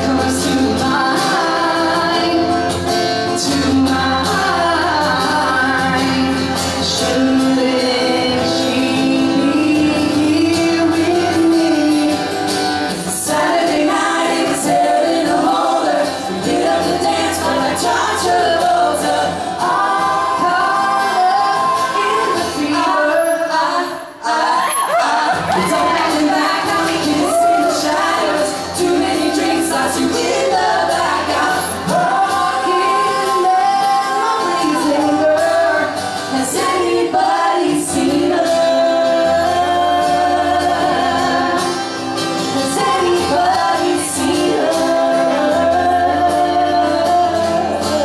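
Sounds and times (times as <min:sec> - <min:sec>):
acoustic guitar: 0:00.0 - 0:48.0
man and woman singing: 0:00.0 - 0:48.0.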